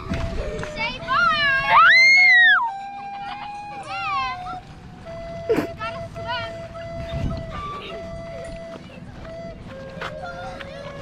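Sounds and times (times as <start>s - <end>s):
children's voices: 0.0s - 2.3s, 3.1s - 4.7s.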